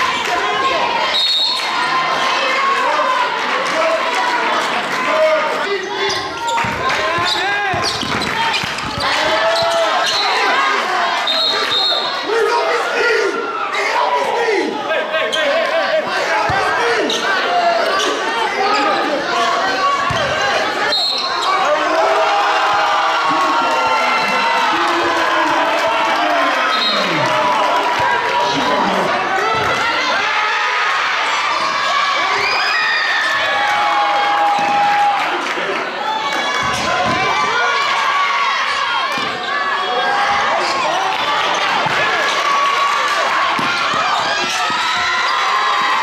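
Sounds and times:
shouts and chatter: 0.0 - 46.0.

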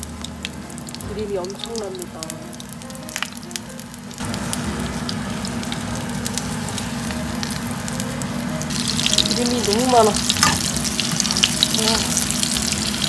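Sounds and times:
fat crackling and popping: 0.0 - 13.0
meat sizzling in a frying pan: 0.0 - 13.0.

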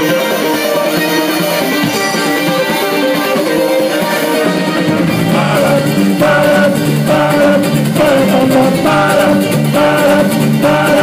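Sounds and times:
drum kit: 0.0 - 11.0
person singing: 0.0 - 11.0
ukulele strumming: 0.0 - 11.0.

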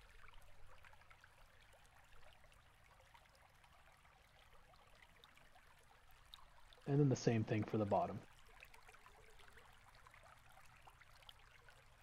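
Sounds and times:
faint room hiss: 6.8 - 8.2.

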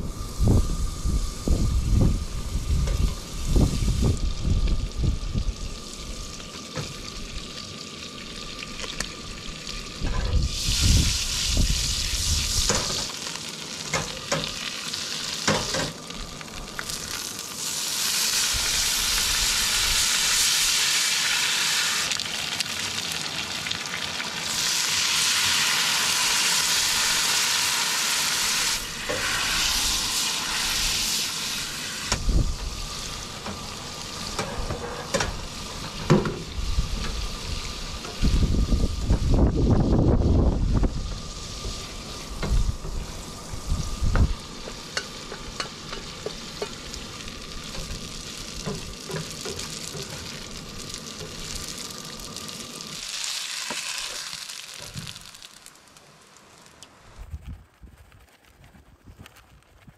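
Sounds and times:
shrimp sizzling in a skillet: 2.6 - 39.3, 40.2 - 56.8.

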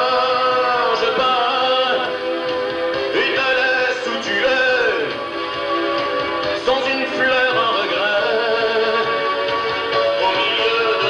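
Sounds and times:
man singing into microphone: 0.0 - 2.3, 3.1 - 5.2, 6.5 - 9.2, 10.1 - 11.0
musical accompaniment: 0.0 - 11.0.

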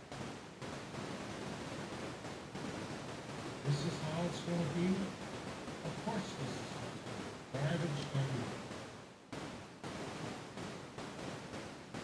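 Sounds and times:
steady rushing hiss: 0.0 - 12.0.

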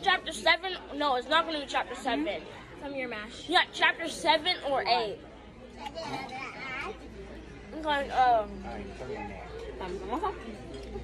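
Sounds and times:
voices talking in background: 0.0 - 11.0.

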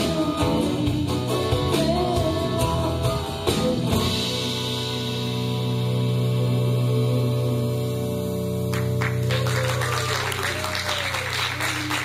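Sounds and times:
audience applause: 8.7 - 12.0
audience cheering: 8.8 - 12.0.

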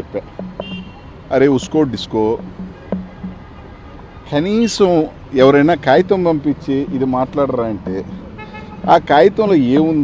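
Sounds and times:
vehicle horn: 0.6 - 1.2, 8.2 - 9.2
man speaking: 1.3 - 2.5, 4.3 - 8.2, 8.8 - 10.0.

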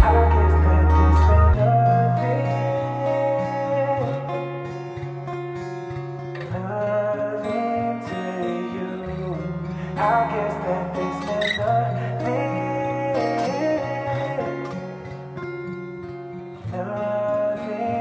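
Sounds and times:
acoustic guitar song: 0.0 - 18.0.

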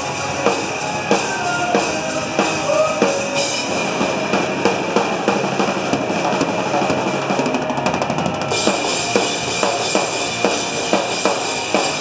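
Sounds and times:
drum roll: 0.0 - 12.0
rock band playing live: 0.0 - 12.0.

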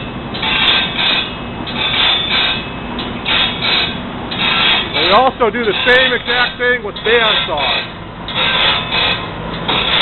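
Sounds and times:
grinder rasping on saw teeth: 3.3 - 6.1, 7.1 - 10.0.

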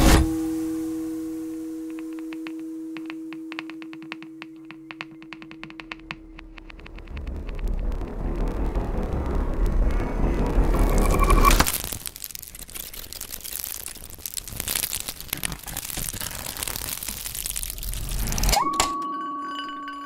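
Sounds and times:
grainy crackling noise texture: 0.0 - 18.6
sharp clicks: 1.9 - 8.2.

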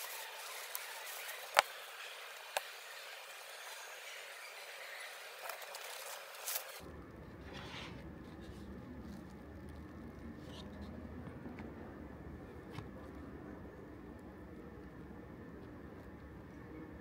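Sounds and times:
egg being peeled: 0.0 - 11.8.

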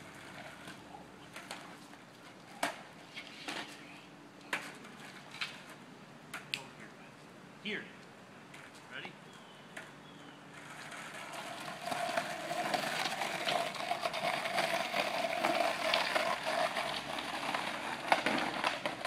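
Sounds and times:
skateboard clicks: 0.0 - 3.8, 4.4 - 6.7, 9.7 - 19.0
skateboard wheels rolling on concrete: 0.0 - 7.4, 8.0 - 19.0.

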